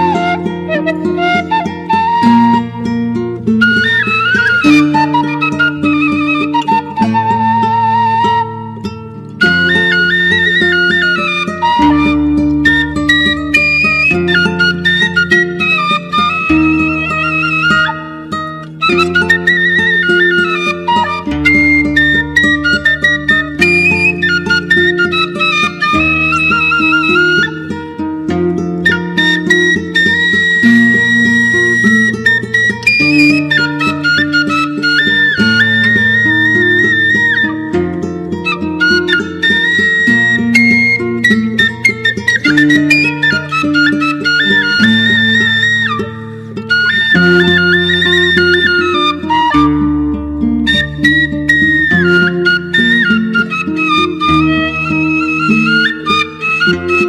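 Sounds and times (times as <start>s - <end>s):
bamboo flute melody: 0.0s - 57.0s
plucked zither accompaniment: 0.0s - 57.0s.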